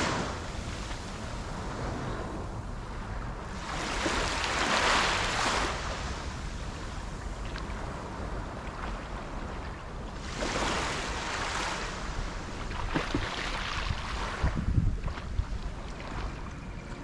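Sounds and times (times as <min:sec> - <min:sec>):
surf hiss: 0:00.0 - 0:16.2
small waves washing ashore: 0:00.0 - 0:17.0.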